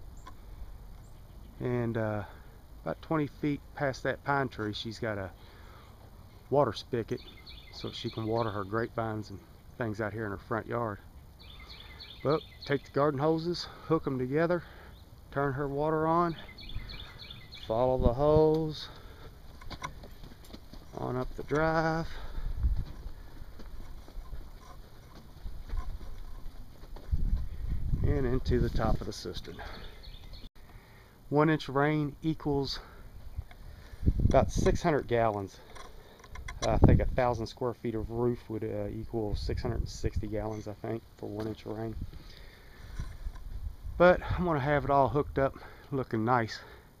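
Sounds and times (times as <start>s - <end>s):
footsteps walking: 18.5s - 29.2s
wind buffeting microphone: 19.9s - 30.2s, 33.1s - 35.1s, 36.4s - 37.4s, 42.9s - 44.5s.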